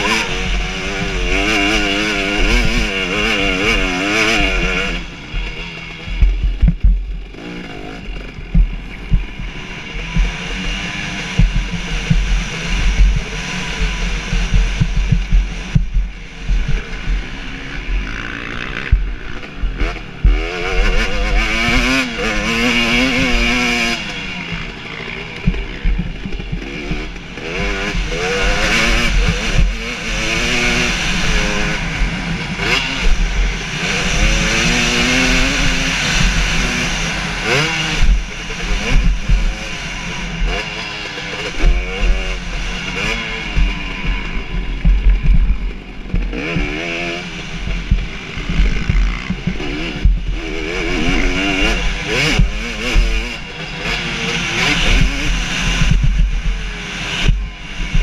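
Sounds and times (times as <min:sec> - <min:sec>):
motocross bike engine revving: 0:00.0 - 0:58.0.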